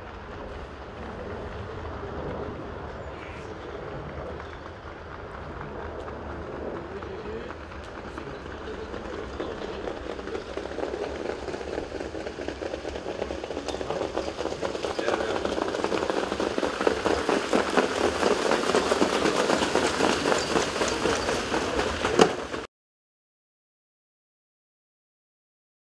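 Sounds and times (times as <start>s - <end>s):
hoofbeats and wheels clattering on sand: 0.0s - 22.7s.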